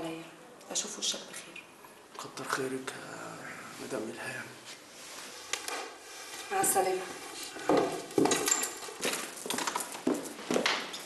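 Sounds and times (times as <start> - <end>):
high heels clicking on hard floor: 7.7 - 11.0.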